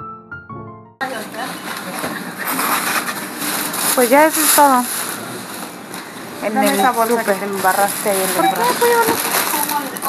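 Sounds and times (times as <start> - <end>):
soft piano music: 0.0 - 1.1
groceries rustling being bagged: 1.0 - 10.0.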